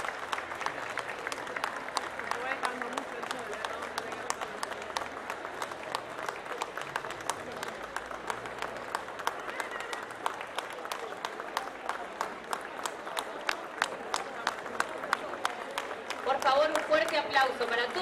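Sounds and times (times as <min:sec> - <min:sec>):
audience applauding: 0:00.0 - 0:18.0.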